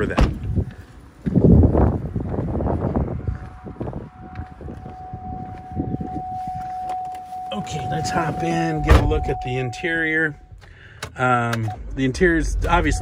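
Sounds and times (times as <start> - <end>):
wind rumble on microphone: 0.0 - 6.8
high-pitched electronic tone: 4.9 - 10.6, 11.6 - 13.0
car door knocks: 8.8 - 9.3.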